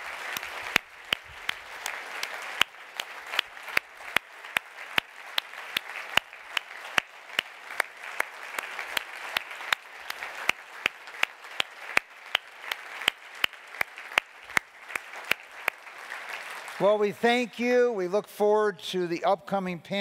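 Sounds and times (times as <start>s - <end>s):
audience applauding: 0.0s - 18.0s.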